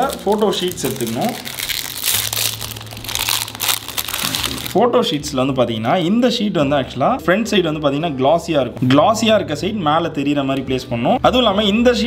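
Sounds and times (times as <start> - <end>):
plastic packaging crinkling: 0.0 - 4.8.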